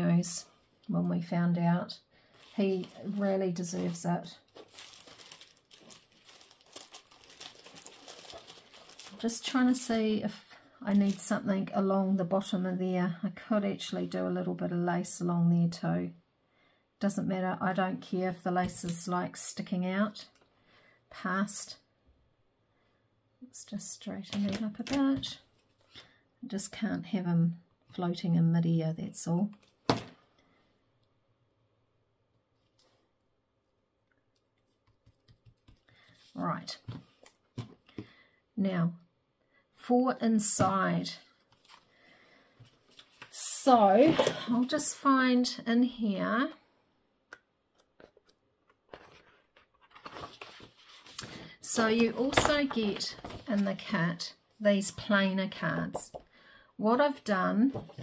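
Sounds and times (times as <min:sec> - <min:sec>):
paper rustling: 0:02.4 - 0:09.6, 0:48.9 - 0:53.9.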